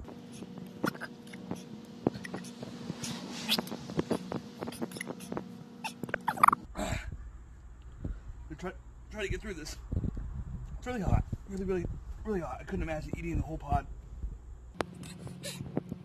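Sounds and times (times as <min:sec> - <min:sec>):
high whimpering vocal sound: 0:00.4 - 0:01.6, 0:04.6 - 0:07.0.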